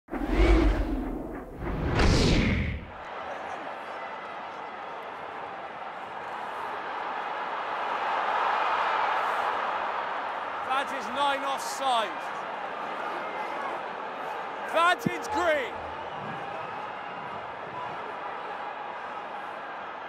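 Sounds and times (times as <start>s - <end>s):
whoosh sound effects: 0.1s - 2.9s
stadium crowd noise: 2.8s - 20.0s.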